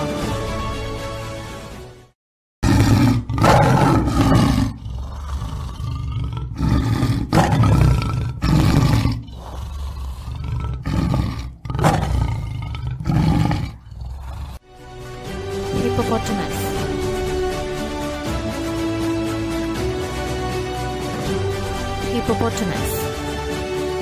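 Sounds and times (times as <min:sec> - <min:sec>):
tiger roaring and growling: 0:02.6 - 0:14.6.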